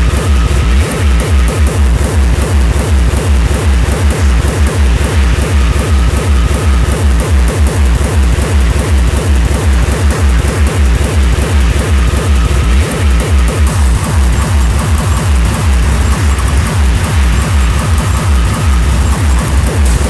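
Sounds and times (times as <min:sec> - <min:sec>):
heavy kick drum: 0:00.0 - 0:20.0
industrial techno music: 0:00.0 - 0:20.0.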